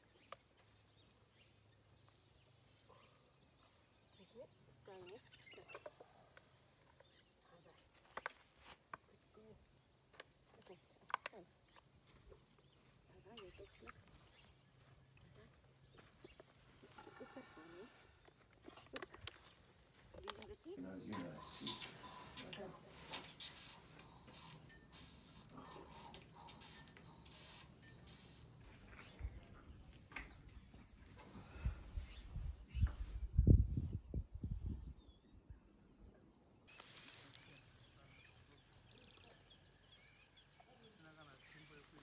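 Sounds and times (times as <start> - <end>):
elephant calf sucking bottle: 21.4 - 28.6.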